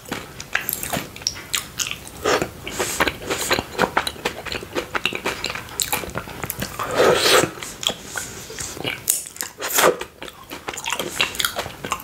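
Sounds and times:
chewing with mouth clicks: 0.0s - 12.0s.

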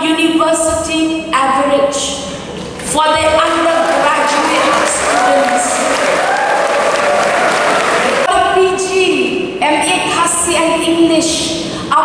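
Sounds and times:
woman's amplified voice: 0.0s - 5.9s, 8.2s - 12.0s
audience clapping: 2.8s - 8.3s.

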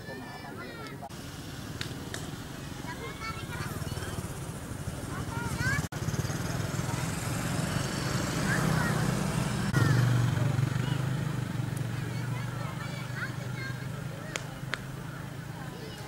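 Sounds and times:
crowd voices: 0.0s - 1.2s, 1.8s - 16.0s
motorcycle and car engines: 0.9s - 16.0s.

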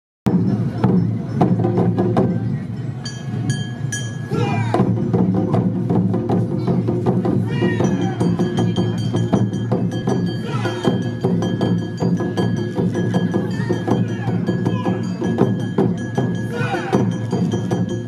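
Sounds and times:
drums beating: 0.3s - 18.0s
high-pitched shouts: 4.3s - 4.8s, 10.4s - 11.0s, 13.5s - 15.1s, 16.4s - 17.2s.

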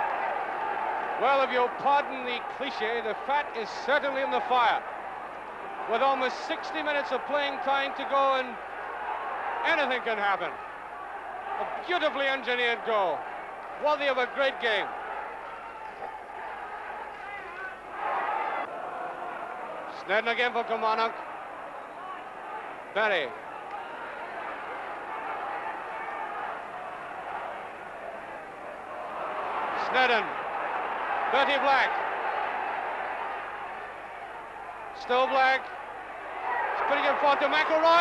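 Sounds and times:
football crowd hubbub: 0.0s - 38.0s.

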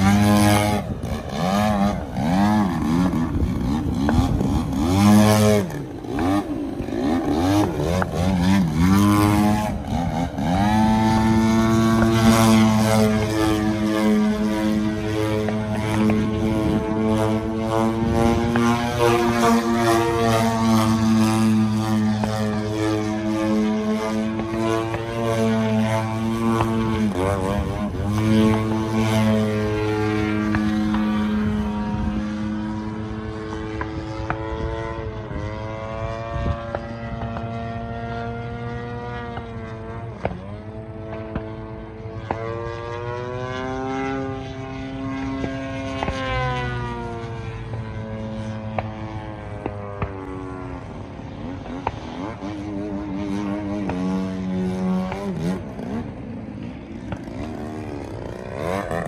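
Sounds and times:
model airplane engine and propeller: 0.0s - 59.0s.

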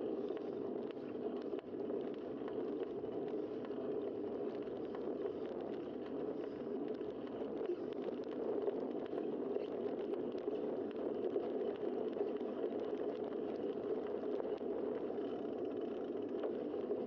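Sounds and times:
small clicks and rattles: 0.0s - 17.0s
wind and road noise: 0.0s - 17.0s.

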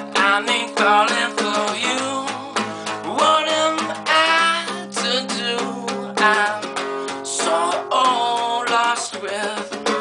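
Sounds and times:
man singing: 0.0s - 10.0s
strummed classical guitar: 0.0s - 10.0s.

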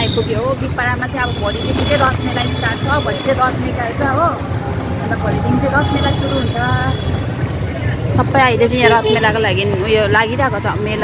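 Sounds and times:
rickshaw engine rumble: 0.0s - 11.0s
woman talking: 5.0s - 7.0s, 8.2s - 11.0s.

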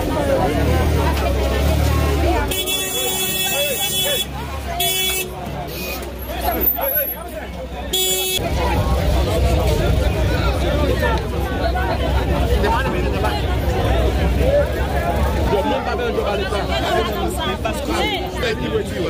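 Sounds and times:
crowd chatter: 0.0s - 19.0s
vehicle horn honking: 2.5s - 6.2s, 7.9s - 8.4s.

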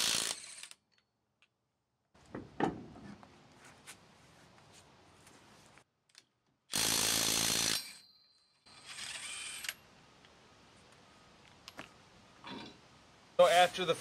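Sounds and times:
impact wrench bursts: 6.7s - 8.0s.

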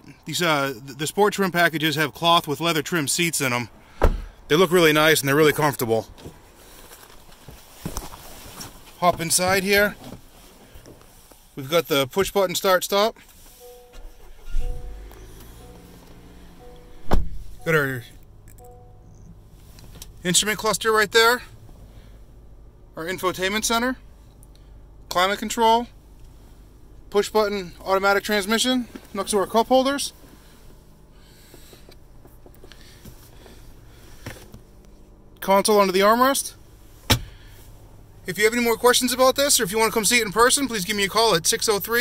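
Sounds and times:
car engine starting and idling: 0.0s - 42.0s
two-note chime: 13.6s - 19.3s.

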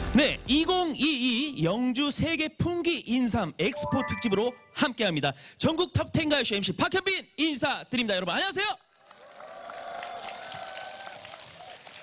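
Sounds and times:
audience applauding: 9.0s - 12.0s.

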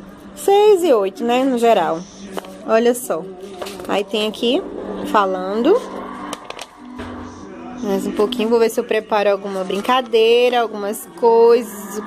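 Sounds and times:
soft background music: 0.0s - 12.0s
paper pages turning: 2.3s - 2.6s, 3.4s - 4.1s, 6.2s - 7.0s, 9.4s - 10.7s.

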